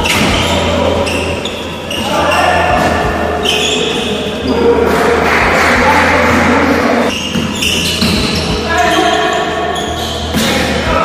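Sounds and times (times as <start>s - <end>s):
players' voices: 0.0s - 11.0s
sneakers squeaking: 0.0s - 11.0s.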